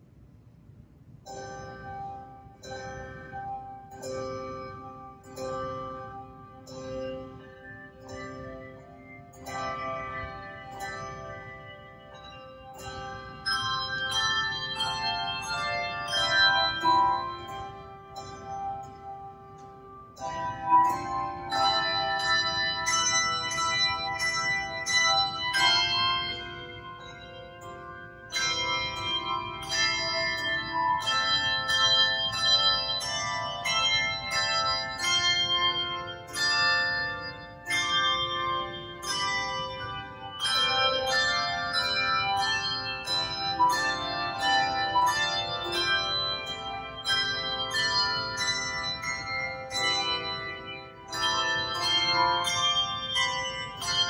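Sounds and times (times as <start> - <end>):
handbell choir ringing chords: 1.2 - 54.0.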